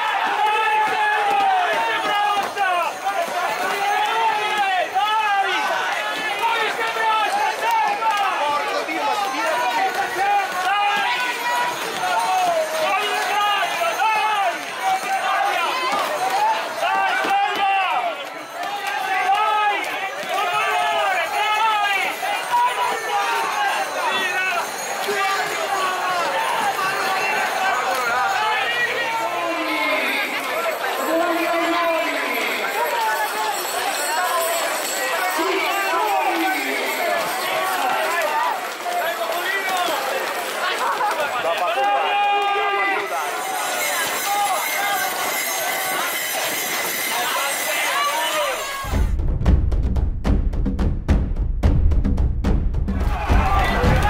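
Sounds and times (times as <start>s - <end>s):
crowd shouting and yelling: 0.0s - 49.2s, 52.8s - 54.0s.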